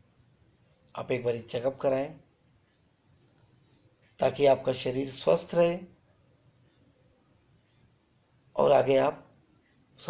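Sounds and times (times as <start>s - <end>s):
man speaking: 1.0s - 2.3s, 4.2s - 6.0s, 8.5s - 9.3s.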